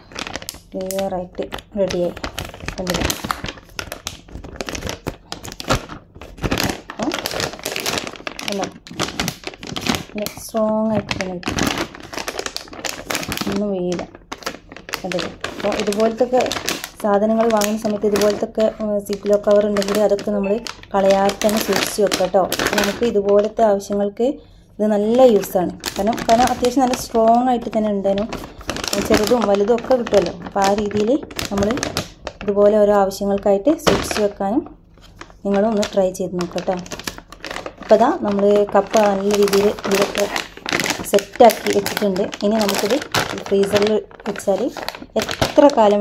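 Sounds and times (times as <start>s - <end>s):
plastic bag crinkling: 0.0s - 46.0s
woman talking: 0.7s - 3.2s, 7.0s - 7.3s, 8.4s - 8.8s, 10.1s - 11.6s, 13.4s - 14.2s, 14.9s - 34.8s, 35.4s - 37.1s, 37.8s - 46.0s.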